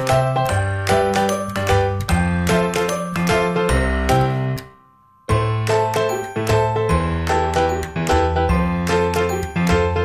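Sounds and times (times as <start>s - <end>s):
cheerful music with chiming notes: 0.0s - 10.0s.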